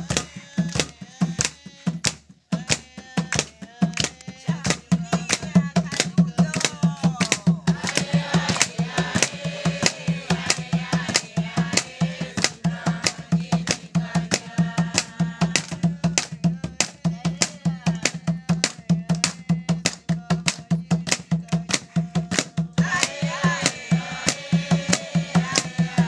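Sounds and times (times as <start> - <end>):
hand drum beating: 0.0 - 26.0
people singing: 0.0 - 26.0.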